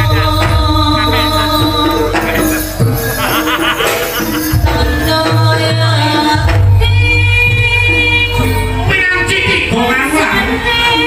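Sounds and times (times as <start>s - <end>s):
gamelan music: 0.0s - 11.0s.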